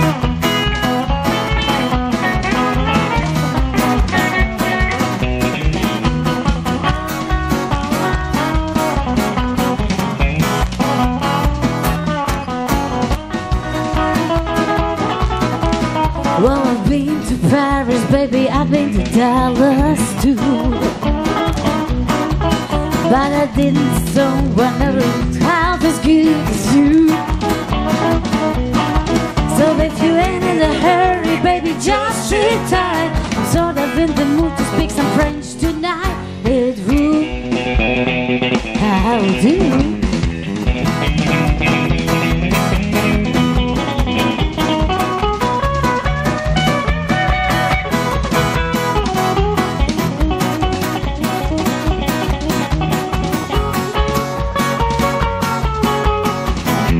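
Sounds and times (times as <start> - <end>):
bass guitar: 0.0 - 56.9
drum kit beat: 0.0 - 56.9
electric and acoustic guitars: 0.0 - 56.9
live band playing: 0.0 - 56.9
woman singing into a microphone: 16.3 - 21.0, 23.0 - 27.4, 29.4 - 37.4, 38.8 - 40.2.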